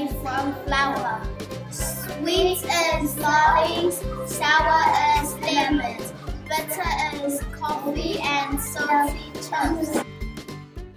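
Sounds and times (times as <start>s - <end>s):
children singing: 1.8s - 10.0s.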